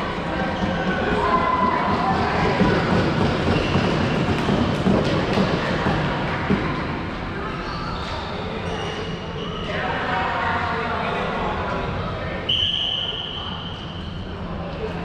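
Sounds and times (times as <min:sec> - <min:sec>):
voices echoing in sports hall: 0:00.0 - 0:15.0.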